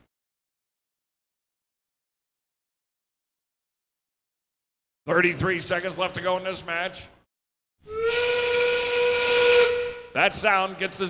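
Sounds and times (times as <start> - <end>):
steam whistle blast: 7.9 - 10.2.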